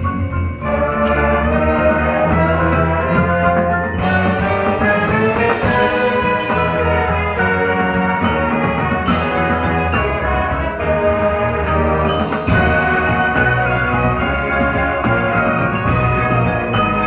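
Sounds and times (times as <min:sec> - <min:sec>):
marching band playing: 0:00.0 - 0:17.0.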